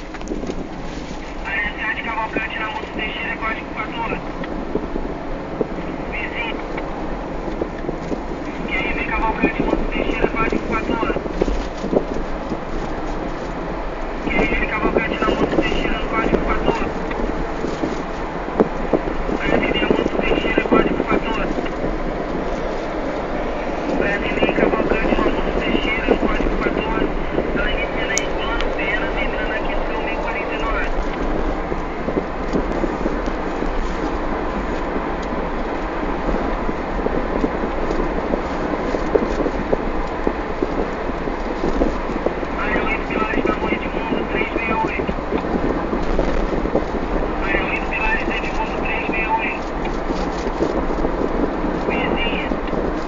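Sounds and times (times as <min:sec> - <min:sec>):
car road noise: 0:00.0 - 0:53.0.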